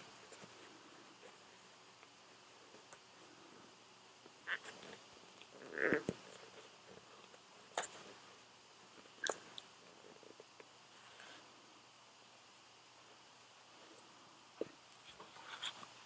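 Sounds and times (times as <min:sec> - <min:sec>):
small rustles: 0:00.0 - 0:11.6, 0:13.7 - 0:16.0.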